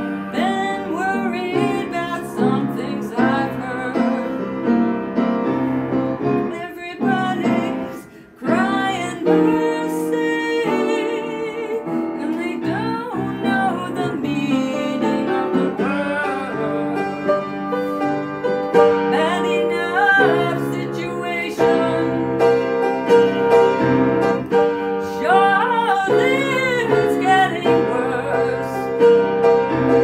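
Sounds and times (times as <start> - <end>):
woman singing: 0.0 - 5.0, 6.2 - 17.9, 18.9 - 30.0
upright piano chords: 0.0 - 30.0.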